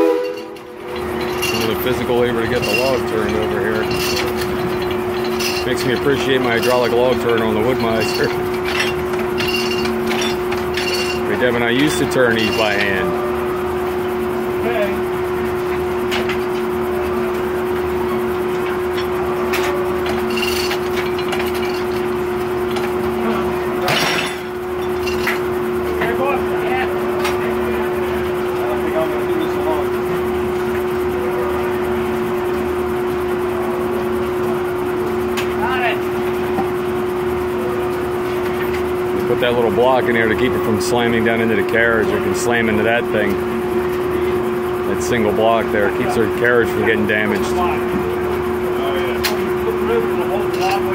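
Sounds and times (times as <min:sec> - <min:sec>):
sawmill blade humming: 0:00.0 - 0:50.9.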